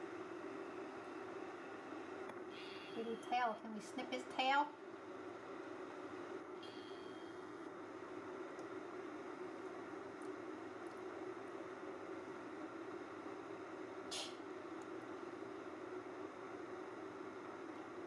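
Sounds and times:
low background hum: 0.0 - 18.0.

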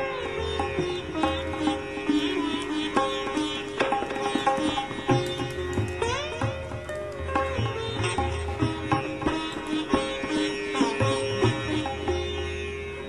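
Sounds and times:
plucked sitar-like string instrument: 0.0 - 13.0.

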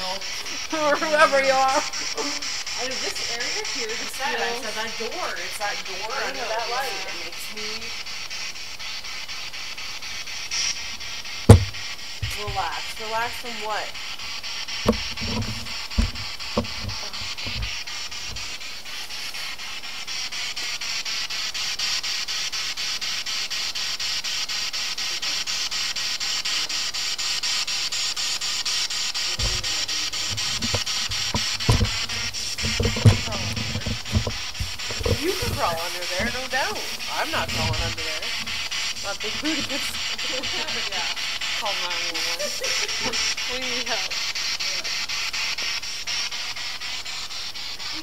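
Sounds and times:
murmured voices: 0.0 - 7.9, 29.3 - 43.9
steady high hiss: 0.0 - 48.0
low thumps and knocks: 11.5 - 12.6, 14.9 - 17.7, 30.3 - 36.4.

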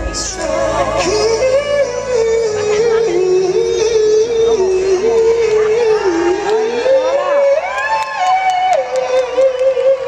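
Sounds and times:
live band playing: 0.0 - 10.0
man singing in falsetto: 8.4 - 10.0.

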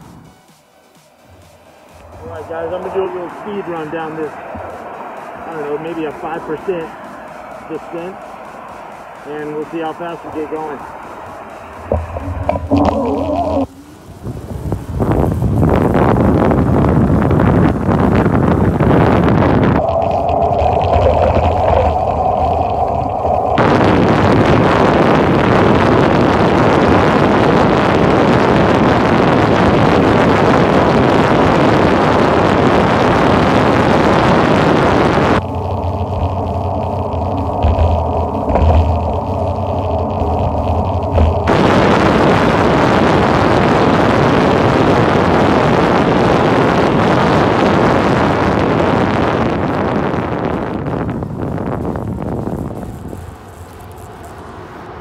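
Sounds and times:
steady hum: 0.0 - 55.0
heavy wind on microphone: 2.0 - 55.0.

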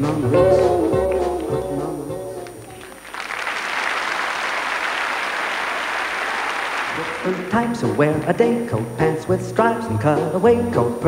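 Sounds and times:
large audience applauding: 2.4 - 7.8.

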